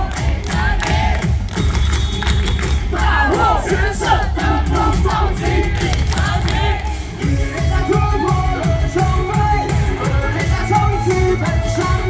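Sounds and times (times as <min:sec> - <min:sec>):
crowd chanting: 0:00.0 - 0:01.3, 0:02.9 - 0:07.2
song with pounding bass beat: 0:00.0 - 0:12.0.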